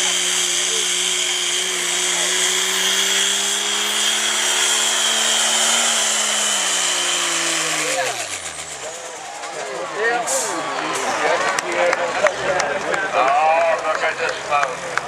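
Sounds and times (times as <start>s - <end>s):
diesel truck engine at full throttle: 0.0s - 15.0s.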